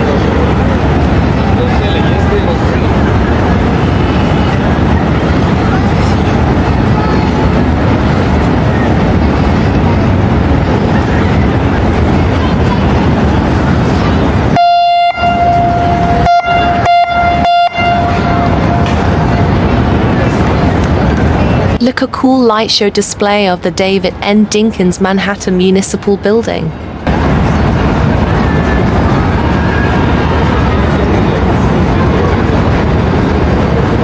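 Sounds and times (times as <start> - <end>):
steady rushing noise: 0.0 - 34.0
horn toots: 14.5 - 19.5.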